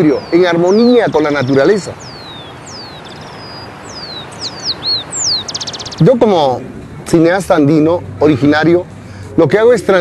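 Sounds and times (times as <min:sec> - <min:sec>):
small birds singing: 0:00.0 - 0:10.0
steady background hiss: 0:00.0 - 0:10.0.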